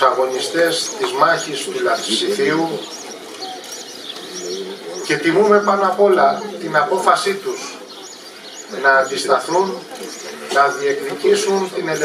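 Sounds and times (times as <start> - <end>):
small birds chirping: 0.0 - 12.0.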